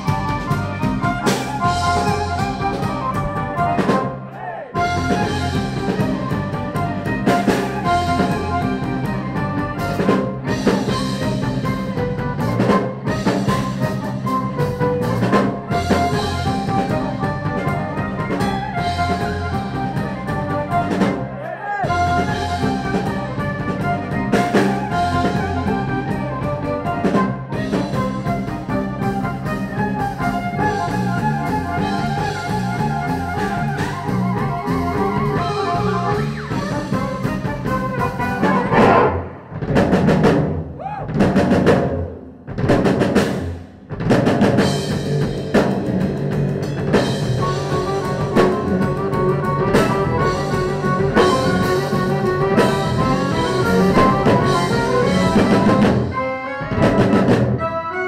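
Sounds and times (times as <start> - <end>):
accordion: 0.0 - 4.2, 4.8 - 39.5, 47.0 - 58.0
drum kit: 0.0 - 58.0
violin: 4.8 - 39.4, 46.9 - 58.0.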